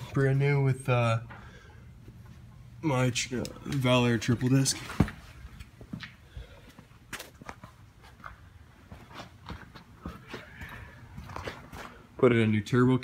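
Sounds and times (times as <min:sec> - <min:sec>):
footsteps on concrete: 0:04.6 - 0:12.3.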